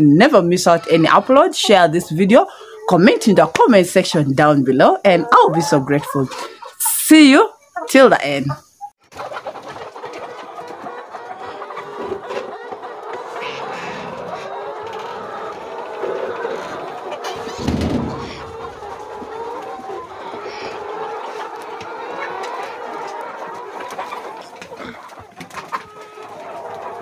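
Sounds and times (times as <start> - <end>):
hens clucking: 0.0 - 27.0
low thud: 17.6 - 18.3.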